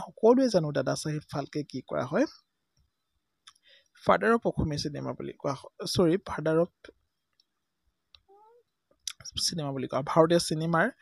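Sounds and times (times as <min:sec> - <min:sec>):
person speaking: 0:00.0 - 0:02.4, 0:04.0 - 0:07.0, 0:08.2 - 0:11.0.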